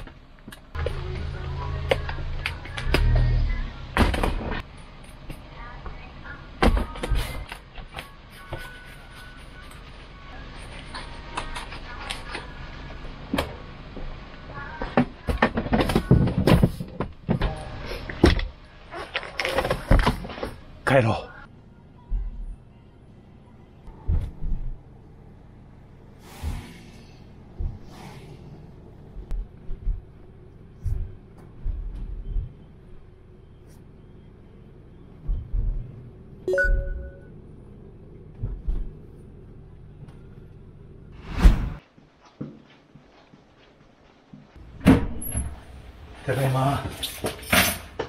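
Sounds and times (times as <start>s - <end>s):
car engine and tyre rumble: 0.0s - 42.0s.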